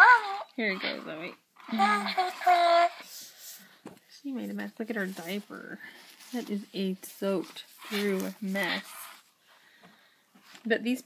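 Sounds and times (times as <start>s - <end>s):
crinkly rustle of paper and plastic: 4.4s - 9.3s.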